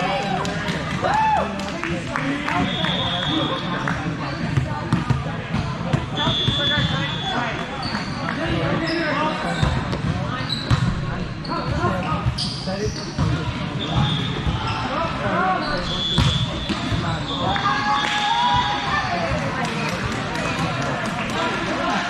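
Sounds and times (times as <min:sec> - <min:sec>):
voices chattering in echoing hall: 0:00.0 - 0:22.0
volleyball strikes: 0:15.8 - 0:17.2.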